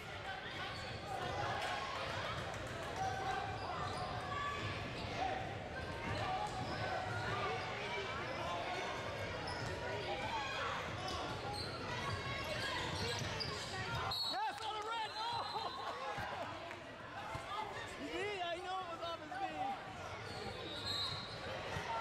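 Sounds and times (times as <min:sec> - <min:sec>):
crowd chattering in echoing hall: 0:00.0 - 0:22.0.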